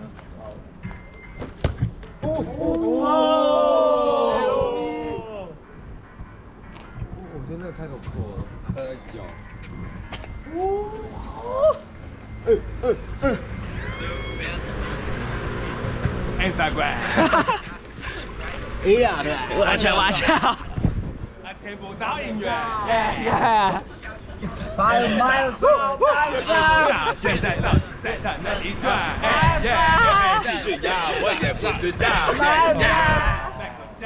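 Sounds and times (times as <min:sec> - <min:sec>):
young men shouting and whooping: 0:02.2 - 0:05.6, 0:10.4 - 0:15.2, 0:18.8 - 0:20.7, 0:22.1 - 0:33.9.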